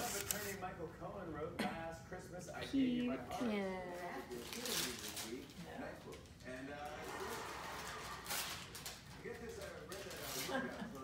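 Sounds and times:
tissue paper rustling: 0.0s - 0.6s, 4.3s - 5.6s, 7.1s - 11.0s.

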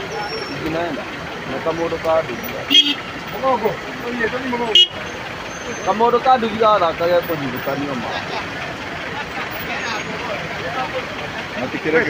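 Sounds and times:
bystanders talking: 0.0s - 12.0s
cars driving through floodwater: 0.0s - 12.0s.

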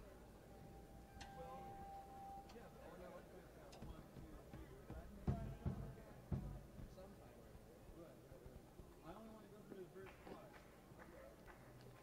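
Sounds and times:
dull low thumps: 3.8s - 7.3s.

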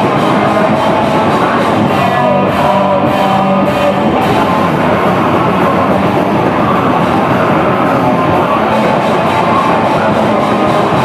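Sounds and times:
hardcore band playing live: 0.0s - 11.0s.

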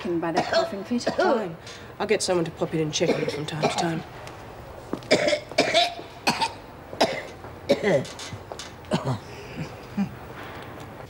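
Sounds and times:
woman coughing harshly: 0.3s - 1.5s, 3.0s - 4.0s, 5.1s - 8.2s, 8.9s - 9.7s.

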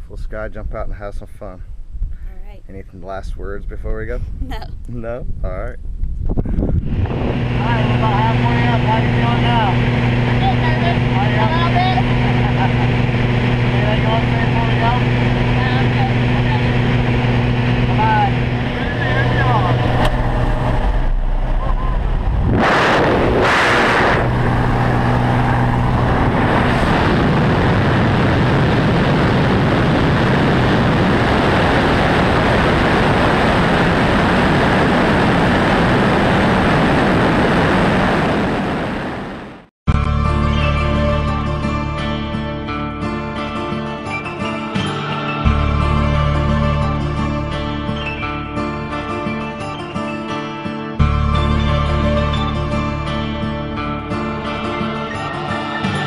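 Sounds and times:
rush of wind: 3.8s - 39.7s
wind noise bursts: 5.2s - 39.7s
propeller plane engine droning: 6.0s - 39.7s, 40.3s - 49.6s, 51.0s - 56.0s.

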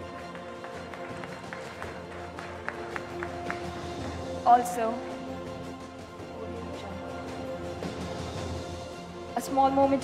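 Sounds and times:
handclaps: 0.0s - 4.2s
background music sustained notes: 0.0s - 10.0s.

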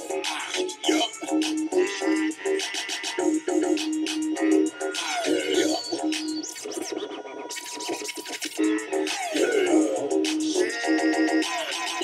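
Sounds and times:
steady high tone: 0.0s - 7.7s, 8.6s - 11.7s
hip hop music: 0.0s - 12.0s.

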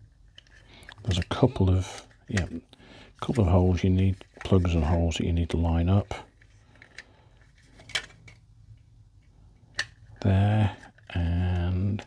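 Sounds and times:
hard plastic parts clicking: 6.3s - 8.4s, 9.2s - 12.0s.

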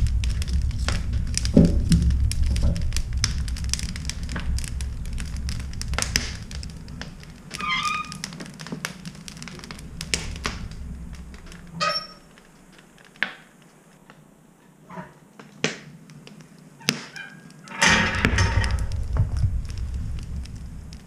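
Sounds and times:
wood fire crackling and popping: 0.0s - 21.0s
stove door squeak and clank: 7.5s - 8.2s, 11.7s - 12.3s, 16.8s - 19.0s.

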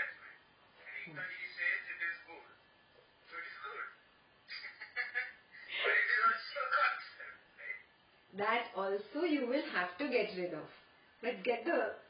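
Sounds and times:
woman laughing: 4.5s - 6.1s
woman speaking: 8.3s - 12.0s.

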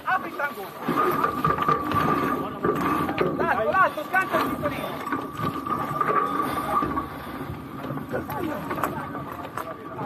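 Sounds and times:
crew voices: 0.2s - 10.0s.

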